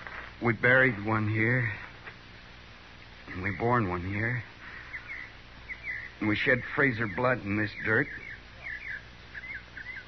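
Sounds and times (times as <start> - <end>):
steady low hum: 0.0 - 10.0
small birds chirping: 0.1 - 10.0.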